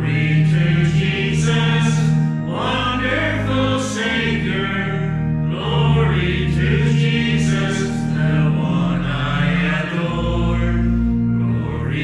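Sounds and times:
group singing a hymn: 0:00.0 - 0:12.0.

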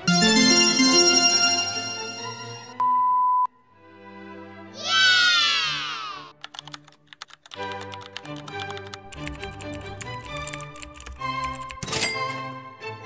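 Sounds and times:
background music: 0:00.0 - 0:02.8, 0:03.5 - 0:13.0
children cheering: 0:04.8 - 0:06.3
keyboard typing: 0:06.4 - 0:11.8.

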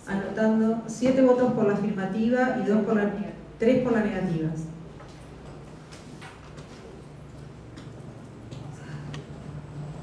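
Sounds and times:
steady low hum: 0:00.0 - 0:10.0
faint clicks and knocks: 0:05.0 - 0:09.3.

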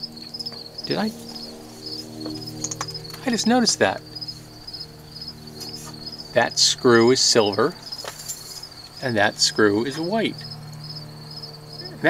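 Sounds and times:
crickets chirping: 0:00.0 - 0:12.0
steady low hum: 0:00.0 - 0:12.0.

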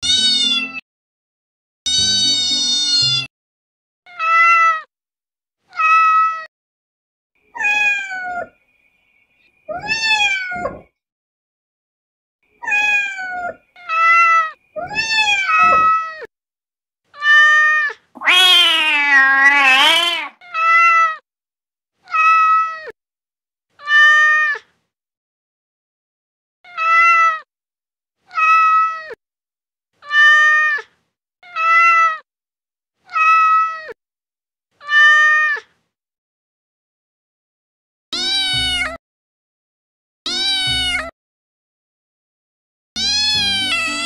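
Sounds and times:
cat meowing: 0:00.0 - 0:00.8, 0:04.1 - 0:04.9, 0:05.7 - 0:06.5, 0:07.6 - 0:08.5, 0:09.7 - 0:10.9, 0:12.6 - 0:16.3, 0:17.2 - 0:21.2, 0:22.0 - 0:23.0, 0:23.8 - 0:24.6, 0:26.7 - 0:27.5, 0:28.3 - 0:29.2, 0:30.0 - 0:32.2, 0:33.1 - 0:34.0, 0:34.8 - 0:35.7, 0:38.2 - 0:39.0, 0:40.3 - 0:41.1, 0:43.0 - 0:44.0.

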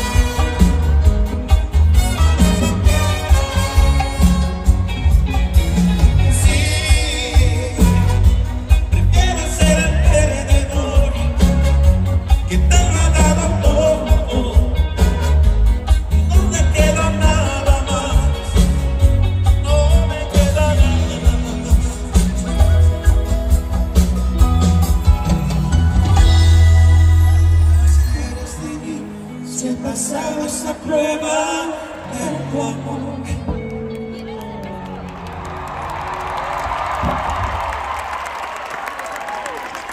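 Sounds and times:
heavy bass: 0:00.0 - 0:28.4
arena crowd cheering and applauding: 0:00.0 - 0:29.1, 0:32.0 - 0:39.9
drums: 0:00.0 - 0:39.9
live band playing: 0:00.0 - 0:39.9
man singing: 0:05.6 - 0:23.3, 0:26.2 - 0:34.0.

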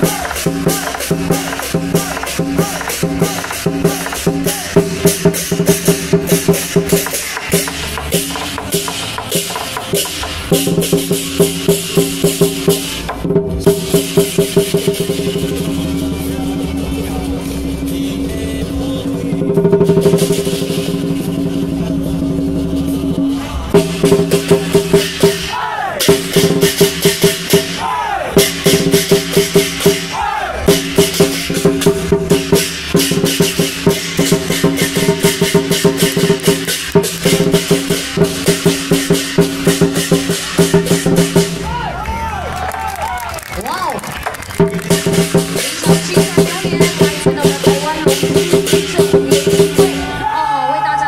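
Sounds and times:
cymbals: 0:00.0 - 0:41.9, 0:44.7 - 0:50.9
big drum beating: 0:00.0 - 0:42.3, 0:44.3 - 0:50.3.

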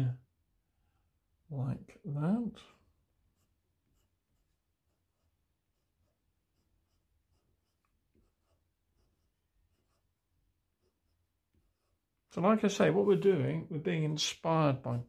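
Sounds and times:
pencil scratching on paper: 0:02.5 - 0:15.0.

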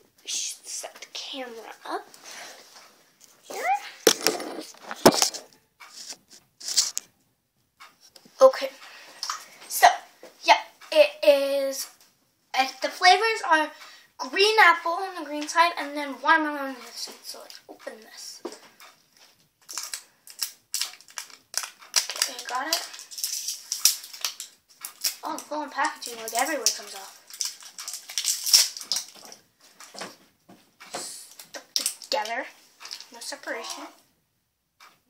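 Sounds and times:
plastic wrapper crinkling: 0:04.0 - 0:07.1, 0:19.6 - 0:30.0, 0:31.3 - 0:33.8.

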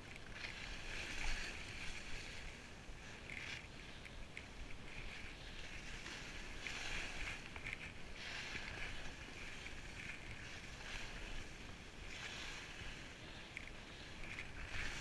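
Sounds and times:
skis scraping over snow: 0:00.0 - 0:15.0.

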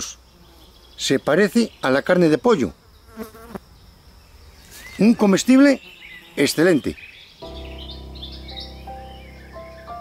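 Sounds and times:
insect buzzing: 0:00.0 - 0:10.0.

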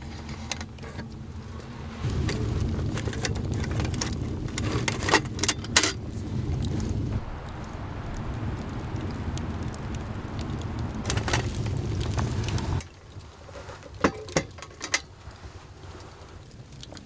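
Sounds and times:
wood fire crackling: 0:00.0 - 0:17.0.

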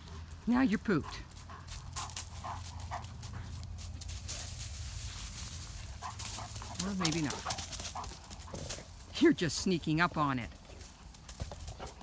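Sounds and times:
dog panting: 0:00.0 - 0:03.9, 0:05.9 - 0:08.9.

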